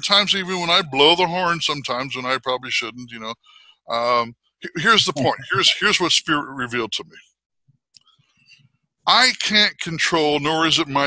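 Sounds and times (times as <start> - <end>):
man speaking: 0.0 - 7.2, 9.1 - 11.0.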